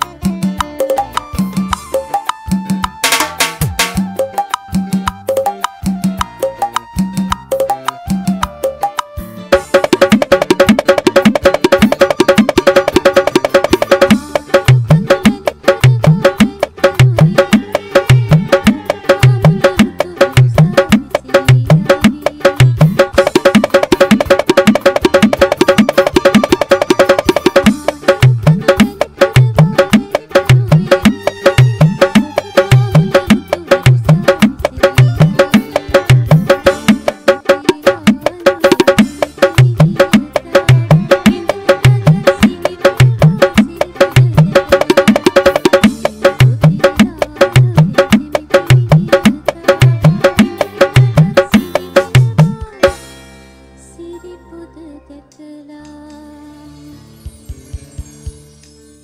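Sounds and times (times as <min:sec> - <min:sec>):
electronic drum pad beats: 0:00.0 - 0:53.1
pitched bass line: 0:00.0 - 0:53.1
sampled percussion hits: 0:00.0 - 0:53.1.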